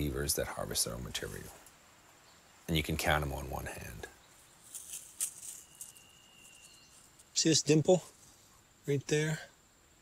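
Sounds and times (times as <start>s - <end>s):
hands rustling a log: 4.6s - 7.3s.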